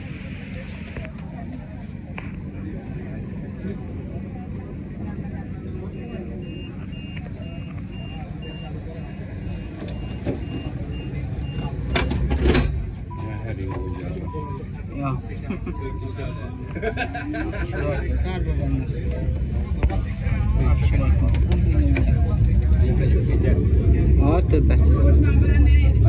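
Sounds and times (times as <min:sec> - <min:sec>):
voices: 0:00.0 - 0:26.0
high-pitched warning beeps: 0:05.8 - 0:12.3, 0:13.0 - 0:14.7, 0:15.7 - 0:16.8.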